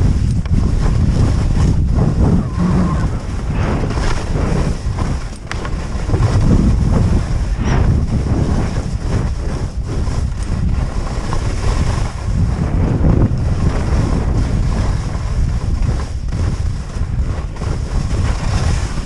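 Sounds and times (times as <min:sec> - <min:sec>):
skis sliding over snow: 0:00.0 - 0:19.0
wind noise on microphone: 0:00.0 - 0:19.0.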